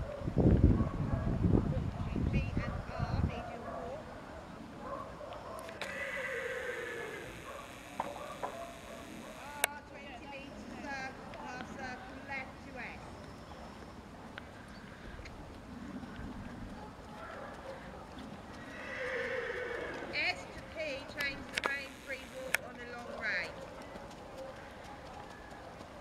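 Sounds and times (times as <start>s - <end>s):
pony hoofbeats trotting: 5.6s - 12.4s, 13.2s - 26.0s
horse whinnying: 5.8s - 9.5s, 18.6s - 20.3s.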